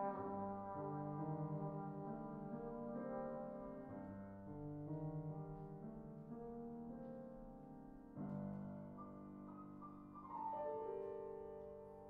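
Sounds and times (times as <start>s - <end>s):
held piano chords: 0.0s - 12.0s.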